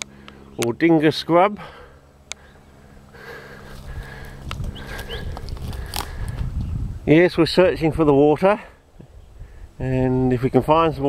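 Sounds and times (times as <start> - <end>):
footsteps on sand and twigs: 3.2 - 6.7
wind rumbling on microphone: 3.6 - 11.0
camera handling noise: 4.3 - 6.5.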